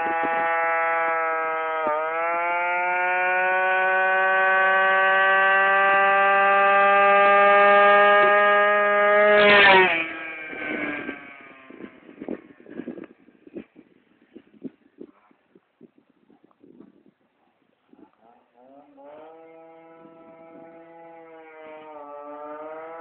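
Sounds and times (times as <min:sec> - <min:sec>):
scooter engine accelerating: 0:00.0 - 0:13.6, 0:18.2 - 0:23.0.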